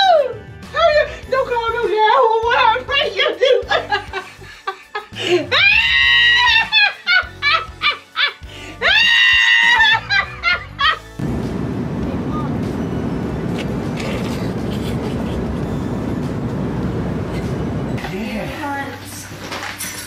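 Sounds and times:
woman laughing: 3.1 - 11.0, 14.3 - 15.6
airplane cabin hiss: 11.2 - 17.9.

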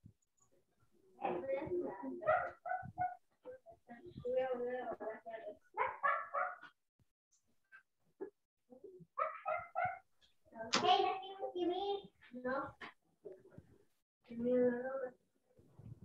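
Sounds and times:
dog barking: 2.2 - 3.2, 5.8 - 6.8, 9.2 - 10.1.

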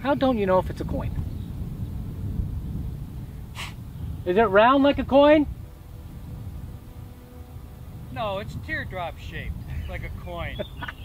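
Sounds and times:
wind rumbling on microphone: 0.0 - 11.0
short breath: 3.6 - 3.8.

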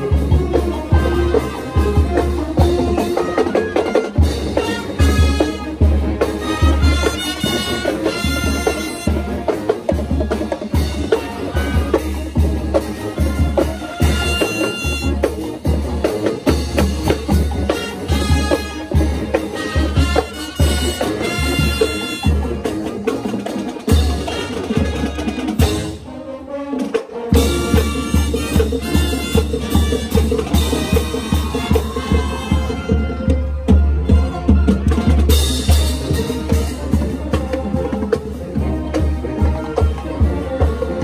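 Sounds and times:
marching band brass: 0.0 - 41.0.

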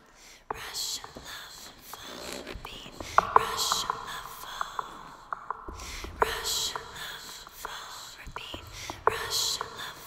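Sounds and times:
person whispering: 0.5 - 10.0.

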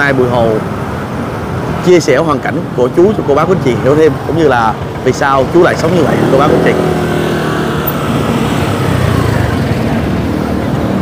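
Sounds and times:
motorbike engines passing: 0.0 - 11.0
street traffic engine hum: 0.0 - 11.0.

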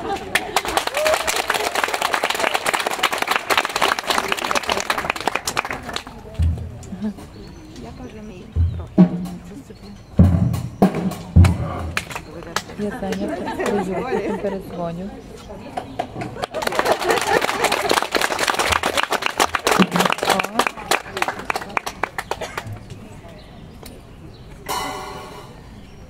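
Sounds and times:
voices talking: 3.8 - 26.0
drum kit playing: 6.4 - 6.9, 8.6 - 12.0, 24.7 - 25.6
cymbals: 24.7 - 25.7.

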